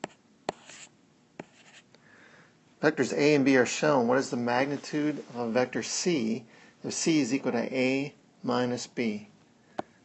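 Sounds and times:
stylus scratching strokes: 0:00.0 - 0:01.9.

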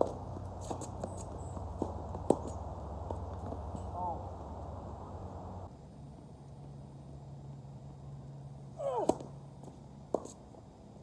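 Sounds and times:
racket hitting tennis ball: 0:00.0 - 0:03.9, 0:08.8 - 0:09.4
steady low rumble: 0:00.0 - 0:11.0.

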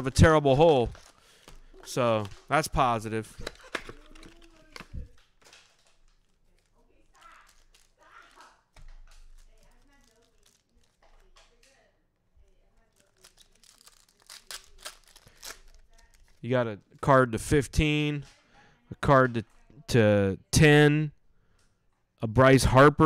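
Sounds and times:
foil packs crinkling and tearing: 0:00.0 - 0:11.7, 0:12.4 - 0:16.5.

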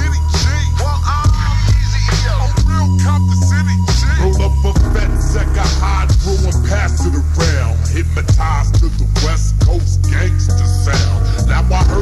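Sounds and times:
deep sustained bass notes: 0:00.0 - 0:12.0
slowed rap vocals: 0:00.0 - 0:12.0.

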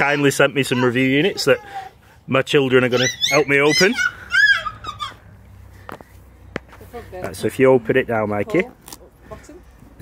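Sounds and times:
girl squealing: 0:02.9 - 0:05.3.

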